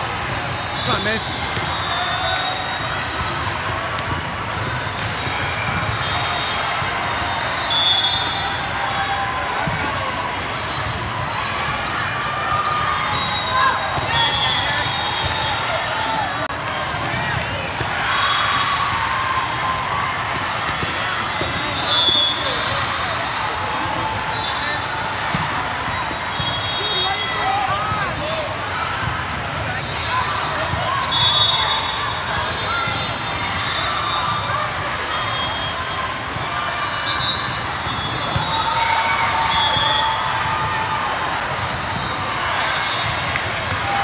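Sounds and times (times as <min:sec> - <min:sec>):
balls hit and bouncing: 0:00.0 - 0:08.7, 0:09.4 - 0:12.3, 0:18.6 - 0:22.9.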